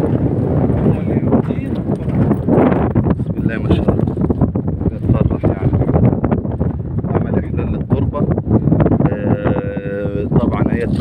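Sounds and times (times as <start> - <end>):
wind noise on microphone: 0.0 - 11.0.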